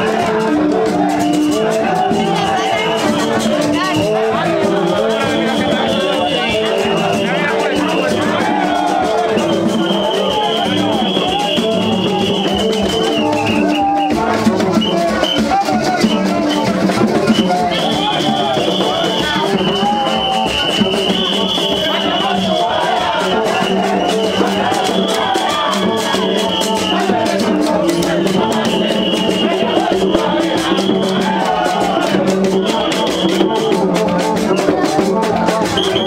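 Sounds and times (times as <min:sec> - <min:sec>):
drums: 0:00.0 - 0:36.0
voices singing: 0:00.0 - 0:36.0
high whistle-like tone: 0:05.0 - 0:08.2, 0:08.8 - 0:14.2, 0:14.8 - 0:27.2, 0:28.2 - 0:31.2, 0:35.7 - 0:36.0.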